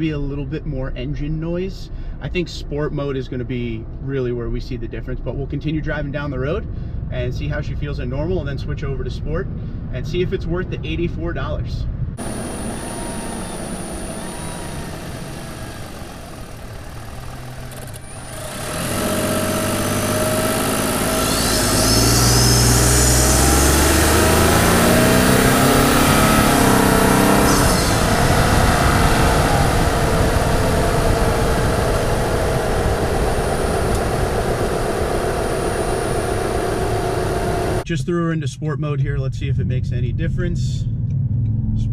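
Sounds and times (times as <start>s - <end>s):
high turbo whistle: 12.2s - 37.8s
truck engine running: 12.2s - 37.8s.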